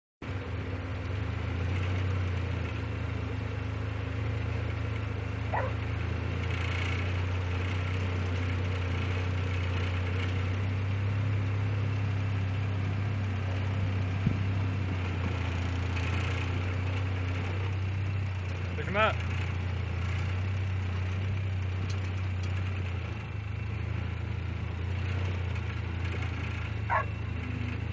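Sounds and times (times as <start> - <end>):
vehicle engine idling: 0.2 - 27.9.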